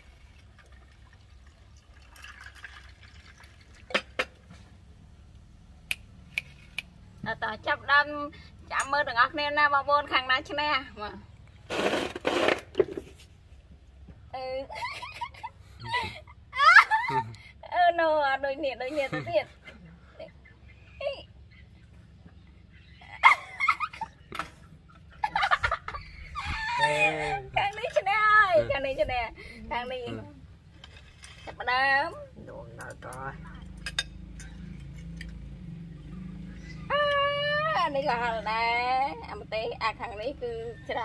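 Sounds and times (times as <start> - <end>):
people laughing and shrieking: 25.2 - 27.5.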